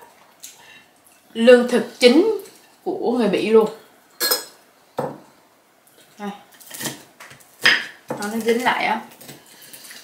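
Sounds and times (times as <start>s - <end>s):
utensils clinking on ceramic plates: 4.2s - 5.1s.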